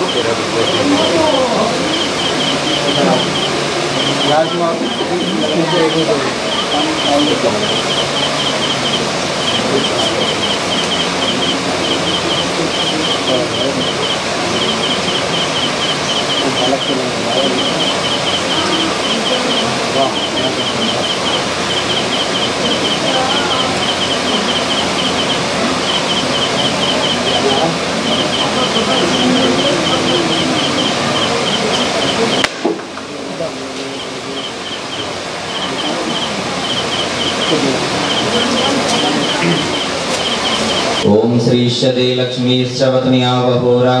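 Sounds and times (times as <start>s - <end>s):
high thin chirping trill: 0.0s - 32.5s, 33.6s - 41.1s
murmur of voices: 0.0s - 44.0s.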